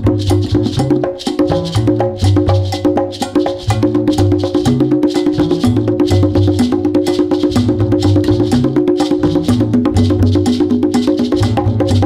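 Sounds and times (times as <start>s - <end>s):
hand drum and shaker groove: 0.0s - 12.0s.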